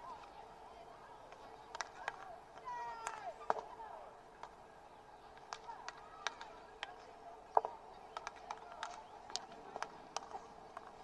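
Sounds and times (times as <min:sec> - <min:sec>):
hockey sticks hitting ball: 0:01.3 - 0:03.8, 0:05.4 - 0:11.0.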